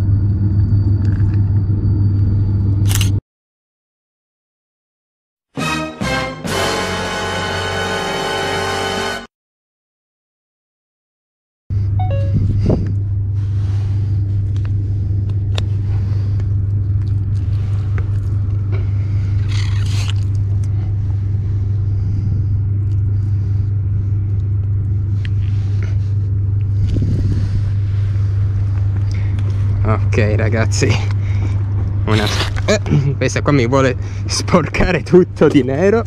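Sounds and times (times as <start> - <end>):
wind rumble on microphone: 11.8 - 19.5, 20.4 - 32.1.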